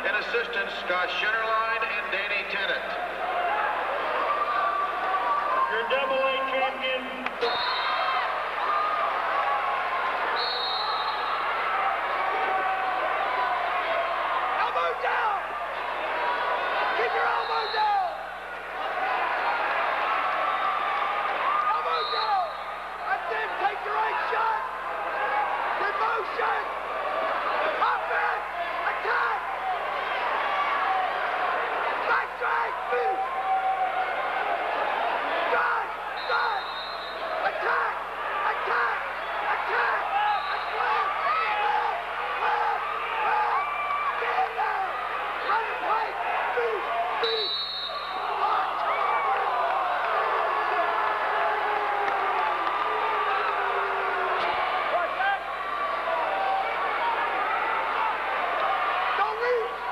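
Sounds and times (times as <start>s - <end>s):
crowd shouting: 2.8s - 59.9s.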